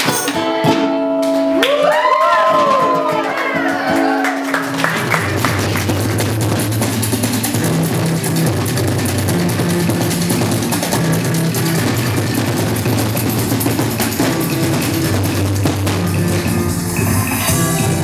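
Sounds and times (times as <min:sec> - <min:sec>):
loud rock music: 0:00.0 - 0:18.0.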